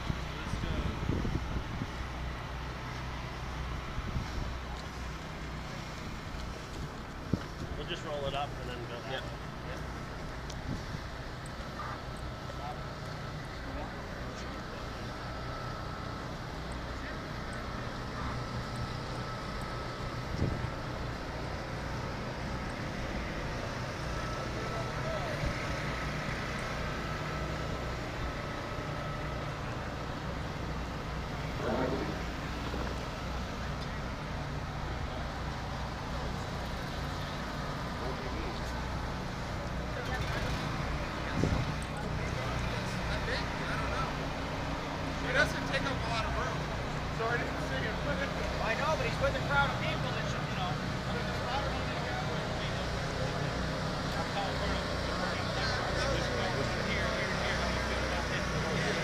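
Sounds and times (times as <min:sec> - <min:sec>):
steady low rumble: 0:29.6 - 0:35.3.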